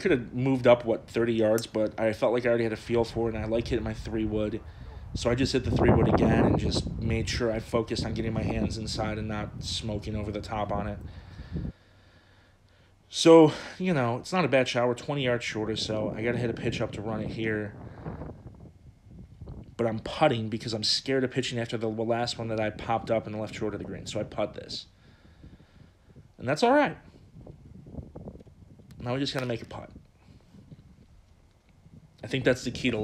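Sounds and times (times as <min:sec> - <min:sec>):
low background rumble: 0:00.0 - 0:33.0.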